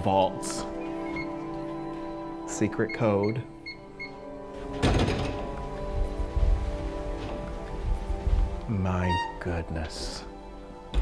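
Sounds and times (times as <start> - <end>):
background music: 0.0 - 11.0
vault door thunk: 4.7 - 5.8.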